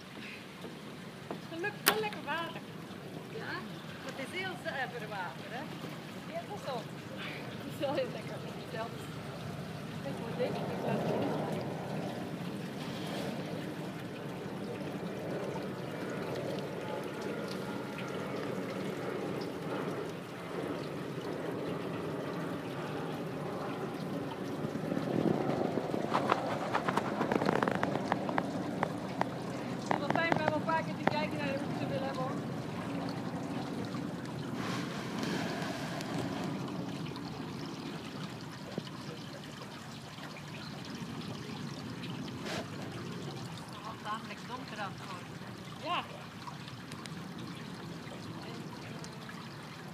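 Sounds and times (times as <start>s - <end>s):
water sloshing and splashing: 0.0s - 49.9s.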